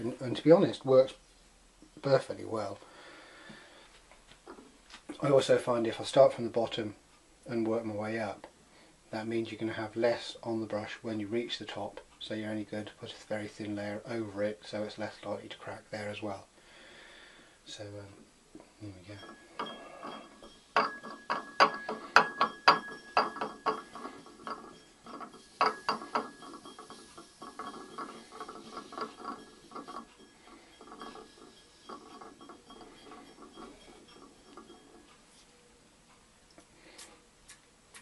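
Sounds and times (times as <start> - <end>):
banding wheel clicking: 19.2 - 35.3.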